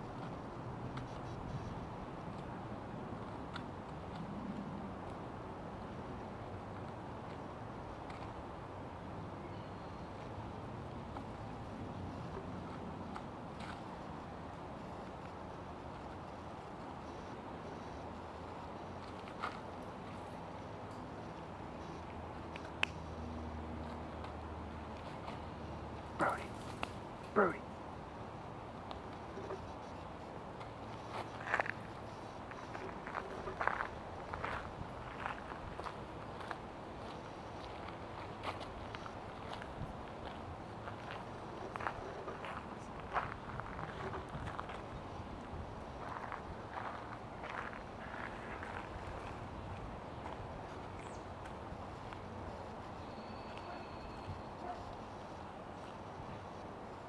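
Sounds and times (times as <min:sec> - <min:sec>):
outdoor background noise: 0:00.0 - 0:57.0.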